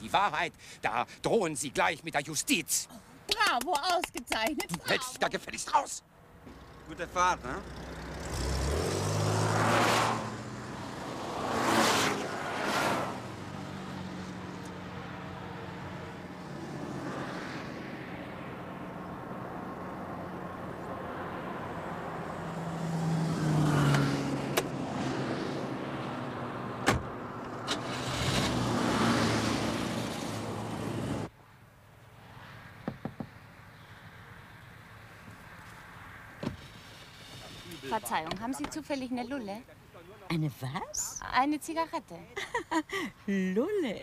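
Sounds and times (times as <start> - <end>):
cars passing at speed: 6.1 - 38.9.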